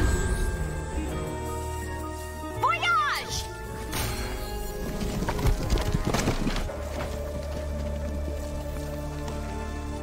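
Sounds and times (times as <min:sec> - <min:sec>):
dramatic score music: 0:00.0 - 0:10.0.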